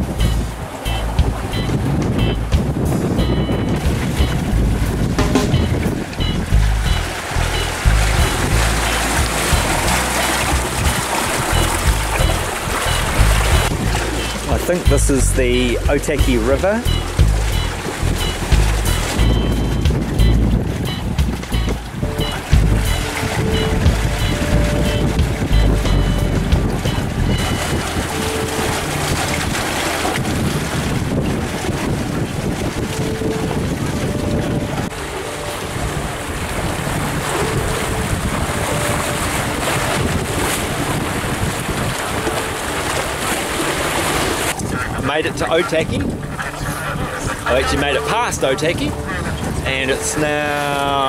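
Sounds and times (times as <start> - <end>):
water rushing along hull: 0.0 - 51.0
wind buffeting microphone: 0.0 - 51.0.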